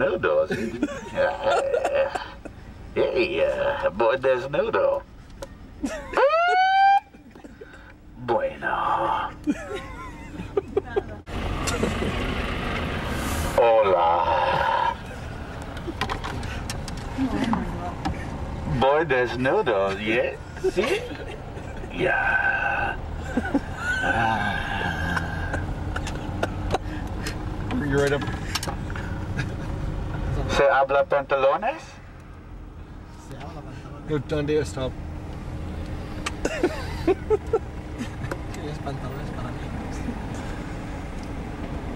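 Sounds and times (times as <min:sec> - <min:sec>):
man calling through megaphone: 0:00.0 - 0:00.6, 0:03.0 - 0:05.1, 0:08.2 - 0:09.4, 0:13.6 - 0:15.0, 0:18.7 - 0:20.4, 0:30.5 - 0:32.0
low vehicle rumble: 0:00.0 - 0:41.9
megaphone siren wail: 0:06.2 - 0:07.2.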